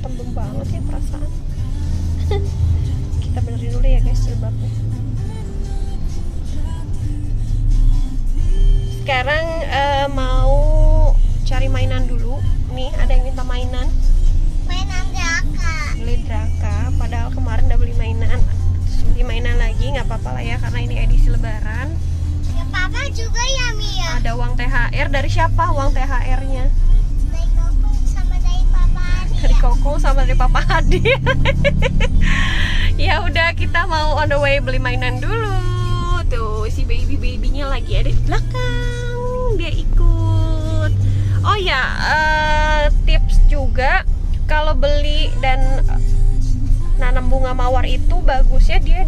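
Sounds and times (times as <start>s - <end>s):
car engine and tyres rumbling: 0.0s - 49.0s
faint music: 0.0s - 49.0s.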